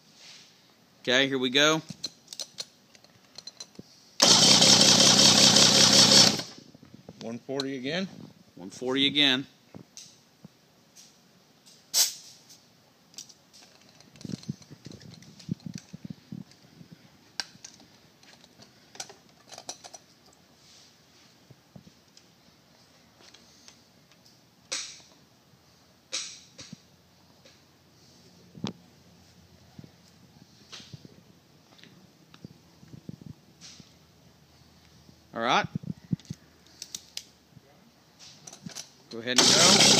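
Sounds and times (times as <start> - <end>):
soft hiss: 0.0 - 2.1.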